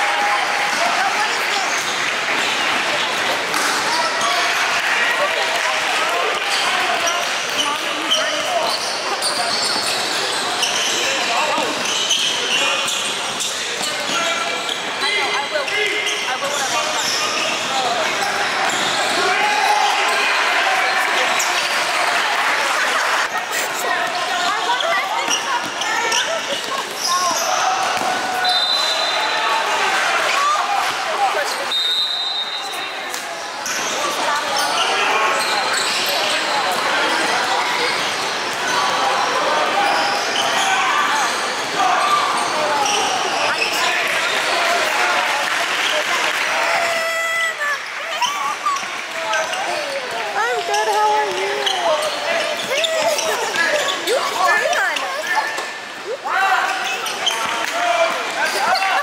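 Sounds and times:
spectators chatter: 0.0s - 59.0s
sneakers squeaking: 0.7s - 4.4s, 6.4s - 19.3s, 23.2s - 29.4s, 30.4s - 44.5s, 46.2s - 55.9s, 56.6s - 57.9s.

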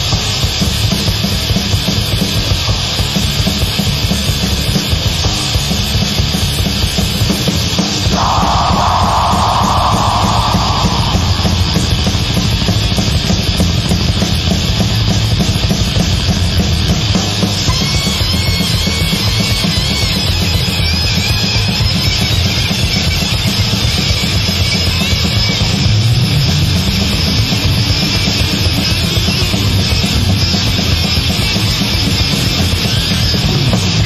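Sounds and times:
death metal band playing: 0.0s - 34.0s.

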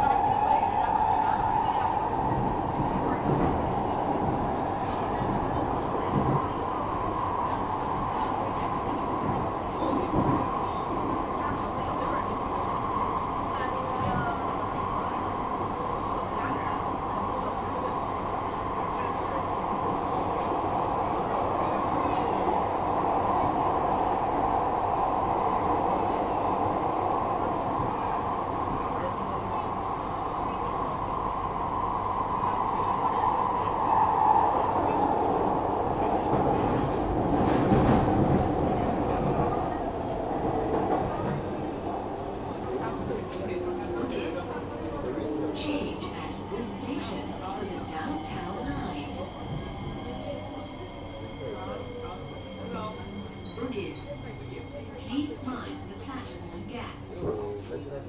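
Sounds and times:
constant train whine: 0.0s - 58.0s
train clattering: 35.6s - 41.7s.

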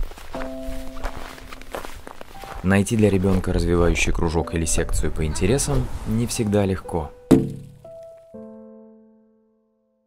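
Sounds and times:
cartoon footsteps in snow: 0.0s - 3.6s.

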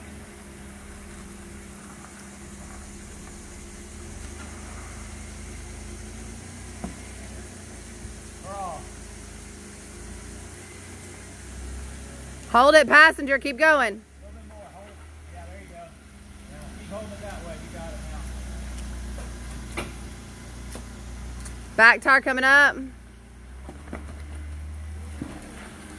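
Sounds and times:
car engine running at low revs: 0.0s - 25.9s.

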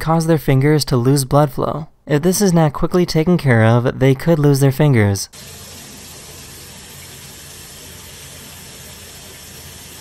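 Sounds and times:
faucet water running into sink: 5.3s - 10.0s.

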